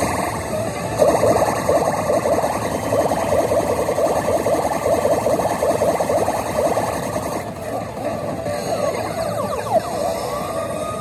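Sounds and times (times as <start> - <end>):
fast-warbling electronic tune: 0.0 - 11.0
slot machine electronic music: 0.0 - 11.0.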